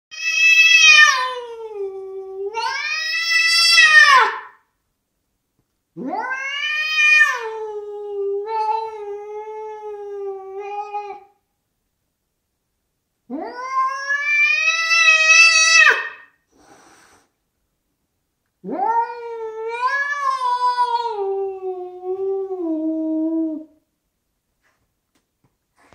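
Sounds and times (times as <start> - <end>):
cat yowling: 0.1 - 4.6, 6.0 - 11.3, 13.3 - 16.3, 18.6 - 23.7.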